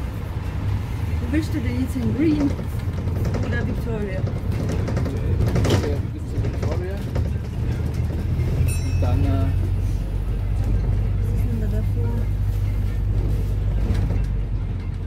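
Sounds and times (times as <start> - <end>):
bus engine drone: 0.0 - 15.0
faint passenger voices: 0.9 - 14.7.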